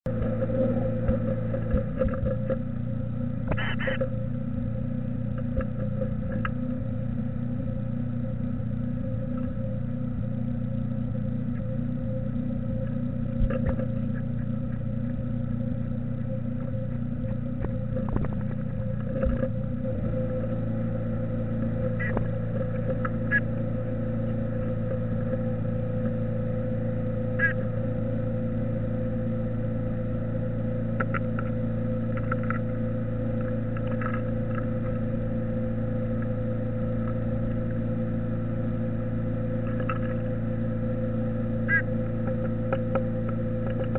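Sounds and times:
steady electrical hum: 0:00.1 - 0:43.9.

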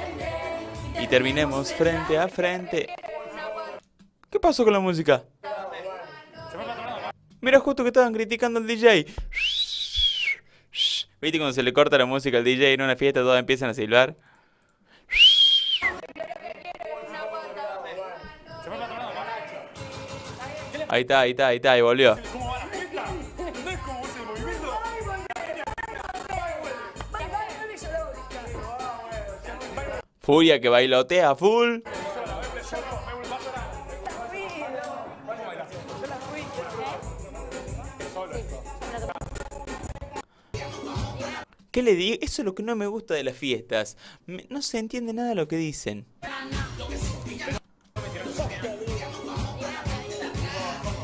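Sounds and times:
dance music: 0:00.0 - 0:03.8, 0:16.8 - 0:21.0, 0:22.0 - 0:30.0, 0:31.8 - 0:41.5, 0:46.2 - 0:51.0
voices talking or singing loudly: 0:00.0 - 0:03.9, 0:22.0 - 0:30.1, 0:31.8 - 0:41.5, 0:46.2 - 0:51.0
person whistling: 0:09.2 - 0:11.2, 0:15.1 - 0:16.1.

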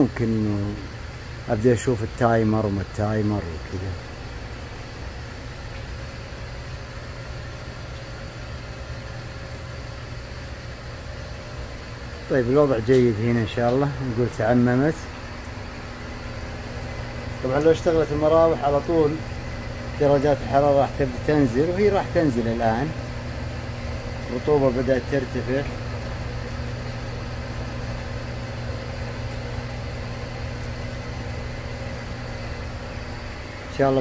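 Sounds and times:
exhaust fan humming: 0:00.0 - 0:34.0
water trickling: 0:00.2 - 0:34.0.

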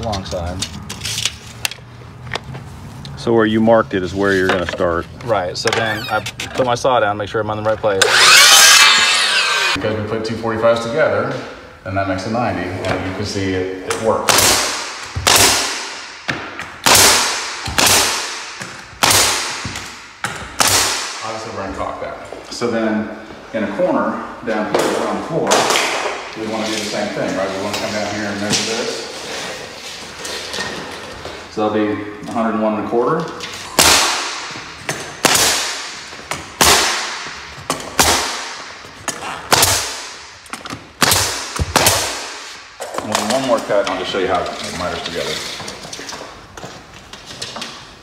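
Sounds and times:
nail gun shots: 0:14.3 - 0:16.2, 0:16.8 - 0:20.0, 0:20.6 - 0:21.2, 0:33.8 - 0:34.5, 0:35.2 - 0:36.0, 0:36.6 - 0:37.3, 0:38.0 - 0:38.7, 0:39.5 - 0:40.3, 0:41.0 - 0:42.5.

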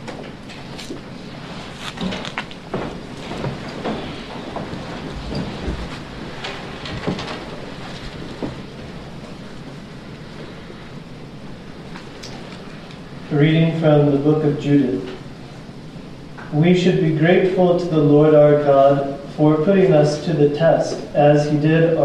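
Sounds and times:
room hiss: 0:00.4 - 0:22.0
soft knocks and rustles: 0:01.6 - 0:09.8.

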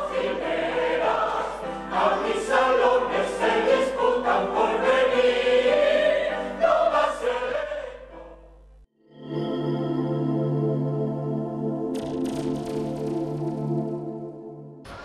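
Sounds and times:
mixed choir singing: 0:00.0 - 0:08.5.

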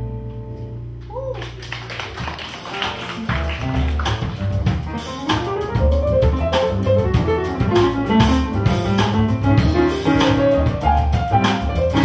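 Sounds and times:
upright bass notes: 0:00.0 - 0:01.2, 0:02.2 - 0:12.0
drum kit taps: 0:02.0 - 0:12.0.

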